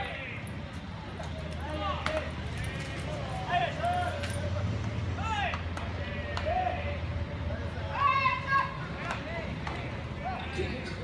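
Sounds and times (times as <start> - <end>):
players shouting across a field: 5.0 - 11.0.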